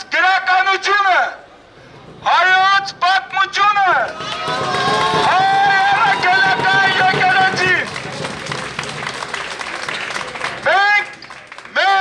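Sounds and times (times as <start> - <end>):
man shouting through megaphone: 0.0 - 1.4, 2.2 - 7.9, 10.6 - 12.0.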